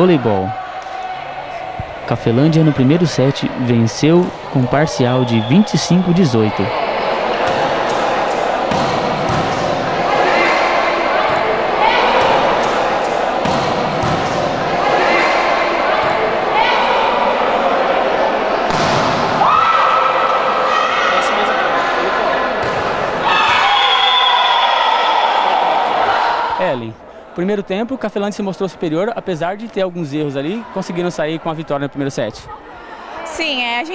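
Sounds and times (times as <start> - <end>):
players shouting: 0.0 - 26.8
spectators' voices: 0.0 - 33.9
volleyball being struck: 7.3 - 16.3, 18.6 - 19.5.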